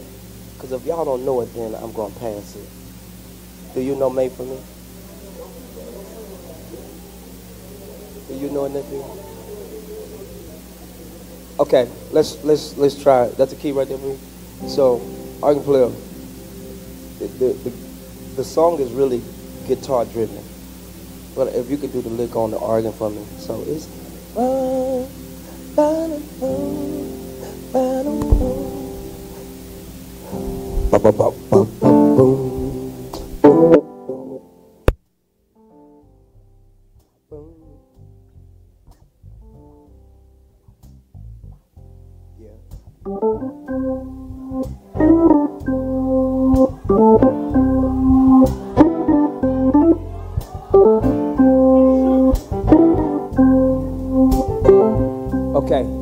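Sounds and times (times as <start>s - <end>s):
keyboards: 0.0s - 35.0s, 41.8s - 56.0s
organ playing held chords: 0.0s - 35.0s, 41.8s - 56.0s
electric guitar melodic lick: 23.2s - 35.0s, 43.0s - 56.0s
deep bass note: 36.1s - 56.0s.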